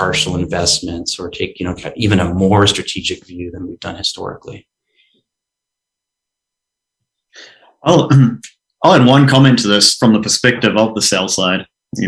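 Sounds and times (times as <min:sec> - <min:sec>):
man speaking: 0:00.0 - 0:04.7, 0:07.4 - 0:12.0
man's sharp intake of breath: 0:07.4 - 0:07.8.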